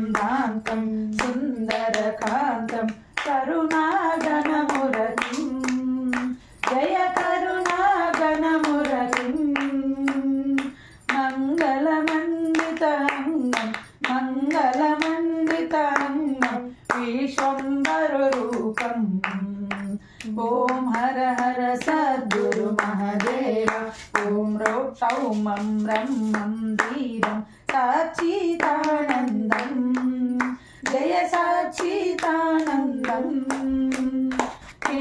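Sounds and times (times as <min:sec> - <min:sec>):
hand claps: 0:00.0 - 0:35.0
person singing devotional song: 0:00.0 - 0:35.0.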